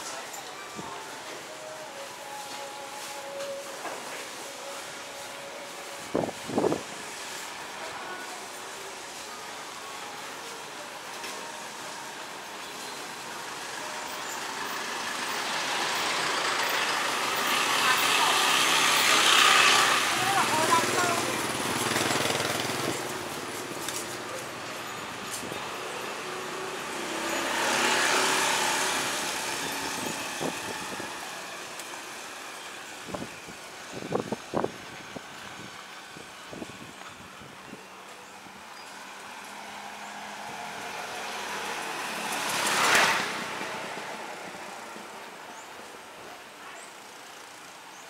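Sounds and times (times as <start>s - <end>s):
street traffic: 0.0s - 48.0s
pickup truck passing: 13.6s - 33.4s, 38.9s - 45.4s.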